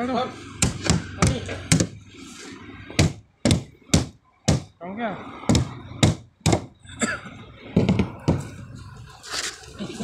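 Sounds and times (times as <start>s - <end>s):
knocking on wooden crate: 3.0s - 4.7s, 5.5s - 6.7s, 7.8s - 8.5s.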